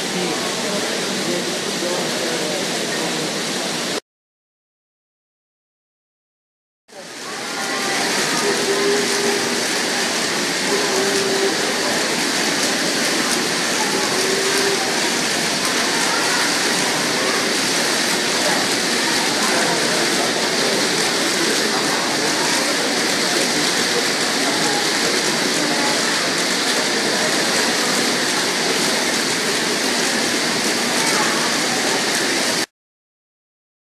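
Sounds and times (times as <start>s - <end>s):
toy cars rolling on tracks: 7.3s - 32.7s.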